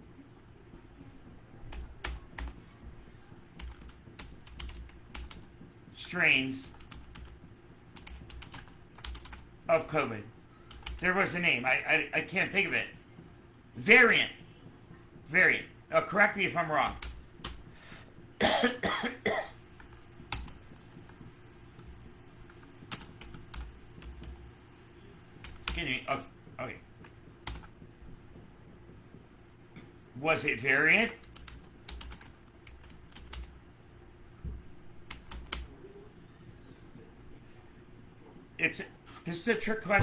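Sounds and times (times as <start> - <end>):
man coughing: 18.4 - 19.6.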